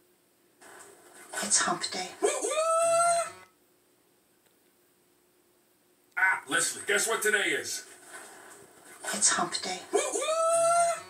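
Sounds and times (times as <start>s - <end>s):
faint steady hum: 0.0s - 11.0s
hooting voice through tv speaker: 1.3s - 3.4s, 6.2s - 7.8s, 9.0s - 11.0s.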